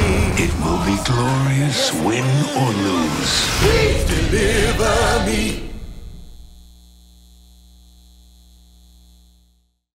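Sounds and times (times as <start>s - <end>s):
music: 0.0s - 6.5s
neon sign electrical hum: 0.0s - 9.8s.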